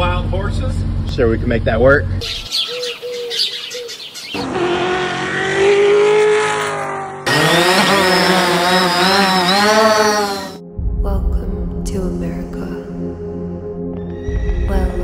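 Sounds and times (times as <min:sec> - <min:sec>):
car engine revving: 0:00.0 - 0:02.2, 0:04.4 - 0:10.6.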